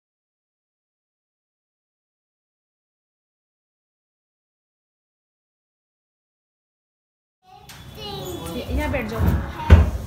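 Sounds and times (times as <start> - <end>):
child's voice: 7.4 - 10.0
voices chattering: 7.5 - 9.9.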